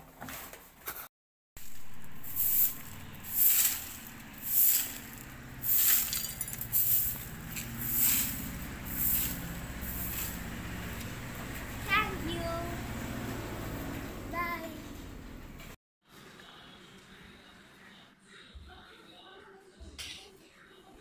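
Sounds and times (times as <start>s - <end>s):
stick broom sweeping paving: 1.6s - 11.0s.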